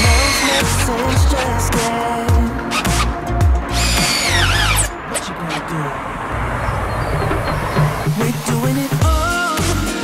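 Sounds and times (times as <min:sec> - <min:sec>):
cordless drill whining: 0:00.0 - 0:01.6, 0:03.7 - 0:04.9
background music: 0:00.0 - 0:05.9, 0:06.7 - 0:10.0.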